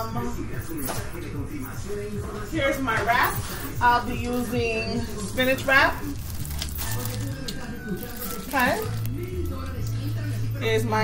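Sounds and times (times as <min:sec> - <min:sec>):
low background music: 0:00.0 - 0:11.0
plastic packaging crinkling: 0:05.4 - 0:10.3.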